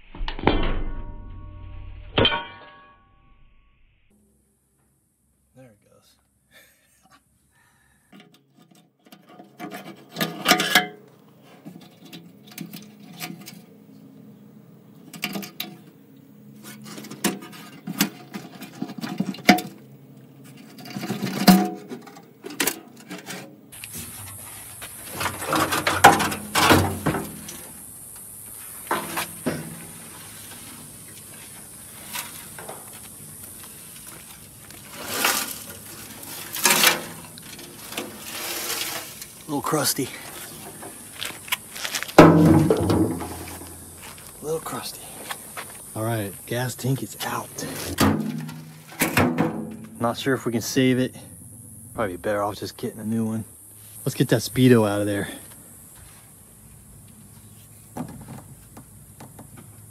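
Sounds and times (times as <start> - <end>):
steady hiss: 23.7 - 59.9
metal tank knocking and clanking: 25.1 - 27.7, 42.2 - 43.9, 47.9 - 50.0.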